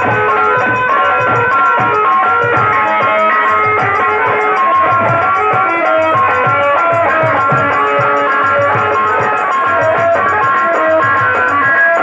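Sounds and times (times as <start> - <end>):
low folk drum strokes: 0.0 - 12.0
plucked melody: 0.0 - 12.0.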